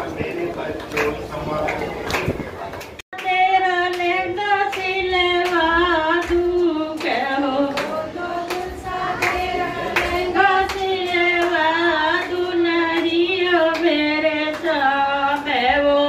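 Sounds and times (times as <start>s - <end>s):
hand-clapping in time: 0.8s - 15.6s
woman singing into microphone: 3.1s - 16.0s.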